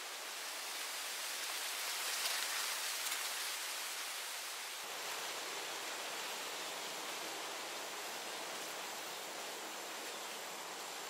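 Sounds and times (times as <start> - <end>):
steady soft hiss: 0.0 - 11.0.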